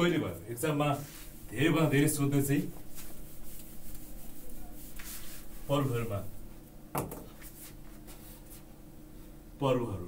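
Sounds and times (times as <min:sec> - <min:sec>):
marker writing on whiteboard: 0:02.6 - 0:05.7
knock on whiteboard: 0:06.9 - 0:07.3.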